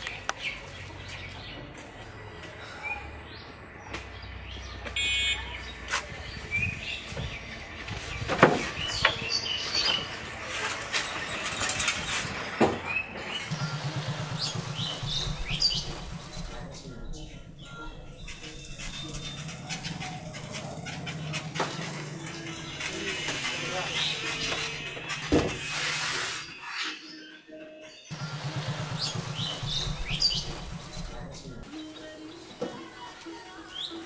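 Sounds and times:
birds chirping: 0:00.0 - 0:34.0
low fast-pulsing rumble: 0:13.5 - 0:21.5, 0:28.1 - 0:31.6.

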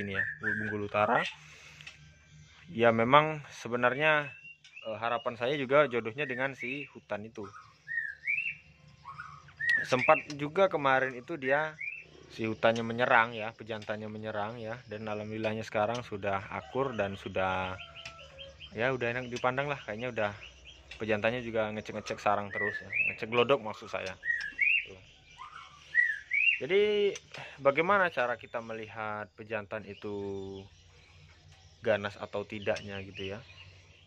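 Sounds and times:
bird whistling: 0:00.0 - 0:01.8, 0:03.9 - 0:29.0.

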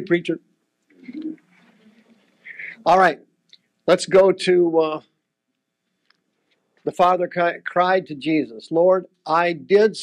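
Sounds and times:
man speaking: 0:00.0 - 0:00.4, 0:02.5 - 0:03.2, 0:03.9 - 0:05.0, 0:06.9 - 0:10.0.

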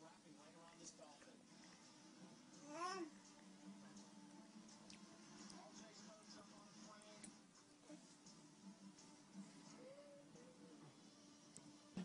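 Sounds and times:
baby cooing: 0:02.6 - 0:03.2.

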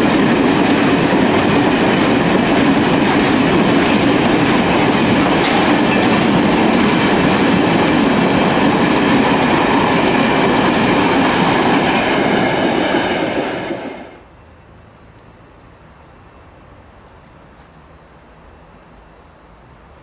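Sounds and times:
train wheels rolling on rail: 0:00.0 - 0:14.3.

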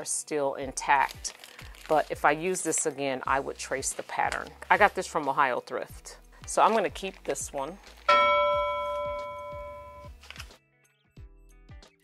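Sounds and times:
bell-like chime: 0:08.1 - 0:10.1.

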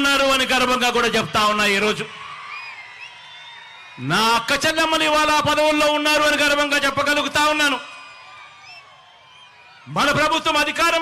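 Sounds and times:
distant crowd cheering: 0:00.0 - 0:11.0
high whistles: 0:02.4 - 0:04.0, 0:08.5 - 0:09.7.

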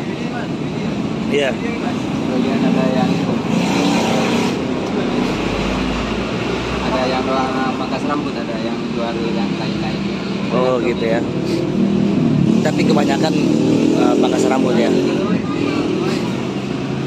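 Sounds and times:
indistinct voices talking: 0:00.0 - 0:17.0
road noise: 0:00.0 - 0:17.0.

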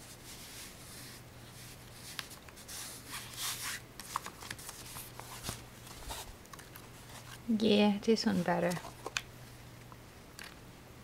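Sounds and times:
hands rubbing fabric: 0:00.0 - 0:03.8.

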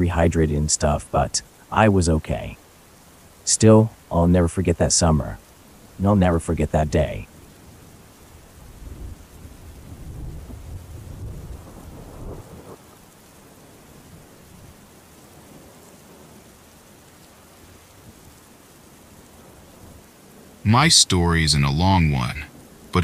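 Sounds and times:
steady rain: 0:00.0 - 0:23.0
thunder rumbling: 0:08.5 - 0:13.0.

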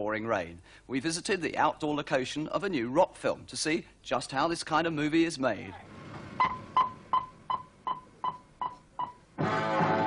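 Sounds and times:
short high-pitched beeps: 0:06.4 - 0:09.2.

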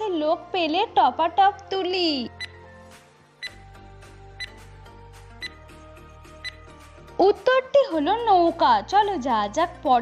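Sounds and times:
soft background music: 0:00.0 - 0:10.0
countdown timer ticks: 0:02.3 - 0:02.6, 0:04.4 - 0:04.6, 0:05.3 - 0:06.7.

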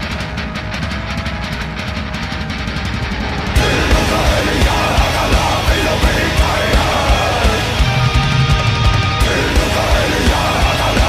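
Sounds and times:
heavy metal guitars and drums: 0:00.0 - 0:11.0.

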